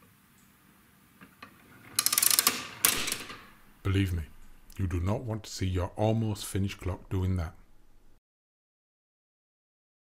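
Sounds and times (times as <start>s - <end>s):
clock escapement rapid clattering: 2.0s - 3.6s.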